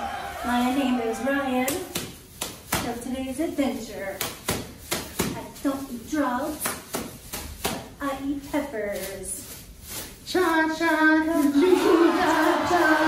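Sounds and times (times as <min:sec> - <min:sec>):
cheerleaders shouting a chant: 0:00.0 - 0:01.9, 0:11.4 - 0:13.0.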